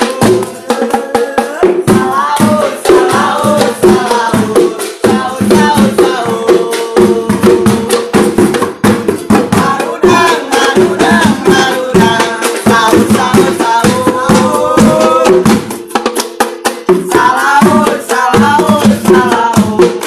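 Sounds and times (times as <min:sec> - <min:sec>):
group singing: 0:00.0 - 0:20.0.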